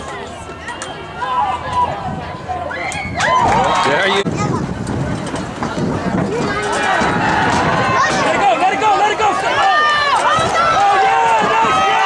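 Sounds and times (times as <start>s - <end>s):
people shouting: 6.4s - 12.0s.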